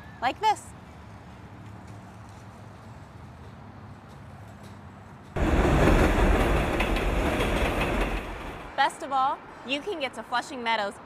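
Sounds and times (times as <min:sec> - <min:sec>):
faint outdoor background: 0:00.0 - 0:11.0
subway train running past: 0:05.2 - 0:09.5.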